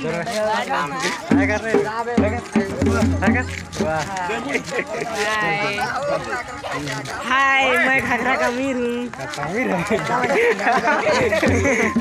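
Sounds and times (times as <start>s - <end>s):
men's voices: 0.0s - 12.0s.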